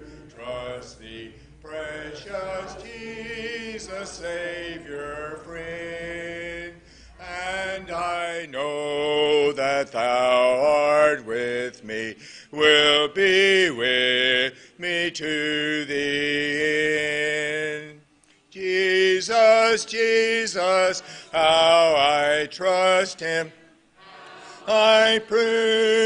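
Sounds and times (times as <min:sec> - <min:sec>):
congregation singing a hymn: 0:00.0 - 0:26.0.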